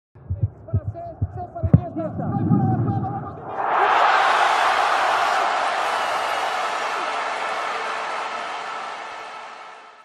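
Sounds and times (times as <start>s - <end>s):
low thuds: 0.2s - 3.6s.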